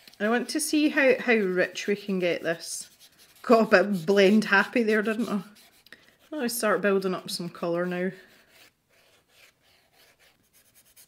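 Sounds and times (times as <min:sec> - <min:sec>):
pastel rubbing on paper: 0:00.0 - 0:06.9, 0:07.7 - 0:11.0.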